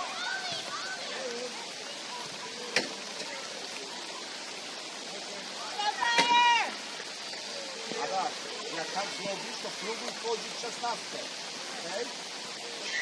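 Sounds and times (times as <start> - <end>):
rain hissing: 0.0 - 13.0.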